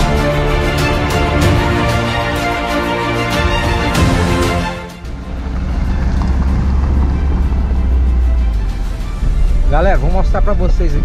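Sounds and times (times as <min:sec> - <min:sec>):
background music: 0:00.0 - 0:11.0
car engine and road rumble: 0:05.0 - 0:09.6.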